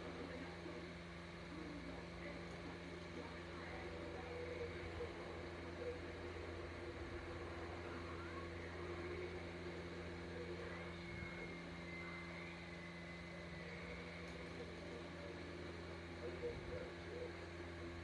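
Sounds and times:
faint television sound: 0.0 - 18.0
low room hum: 0.0 - 18.0.

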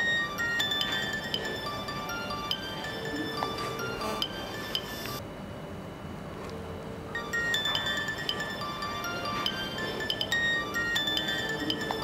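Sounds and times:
bell-like drama music: 0.0 - 5.2, 7.2 - 12.0.

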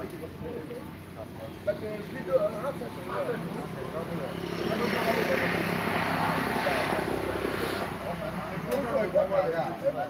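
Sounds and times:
motor vehicle passing by: 0.0 - 10.0.

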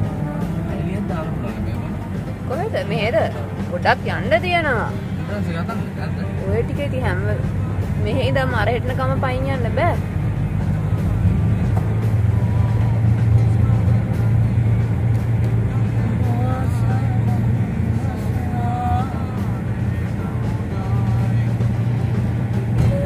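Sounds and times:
car engine drone: 0.0 - 23.0
tyres on road: 0.0 - 23.0.

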